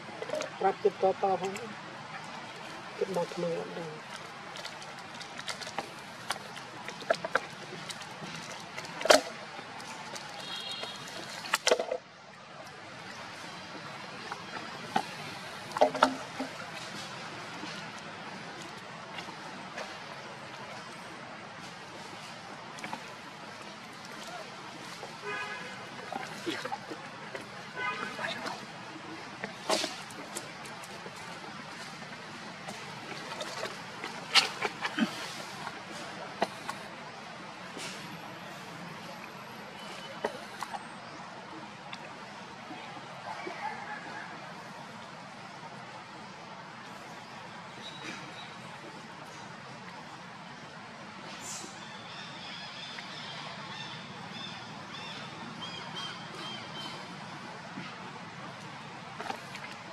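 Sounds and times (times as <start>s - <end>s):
outdoor background hiss: 0.0s - 43.8s, 44.4s - 59.9s.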